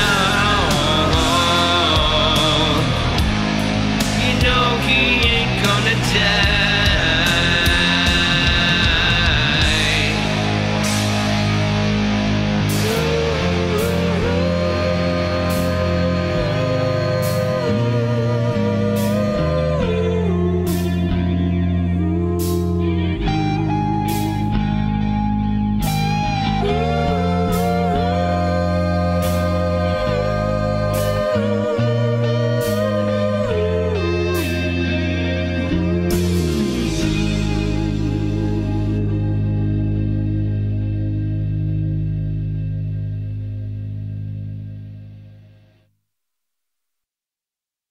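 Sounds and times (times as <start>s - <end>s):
rock song closing chord: 0.0s - 19.8s, 22.4s - 45.0s
electric guitar bending notes: 0.0s - 45.7s
held bass notes: 0.0s - 45.8s.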